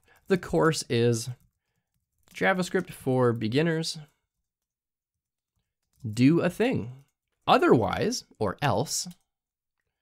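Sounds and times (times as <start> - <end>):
faint keyboard typing: 0.0 - 10.0.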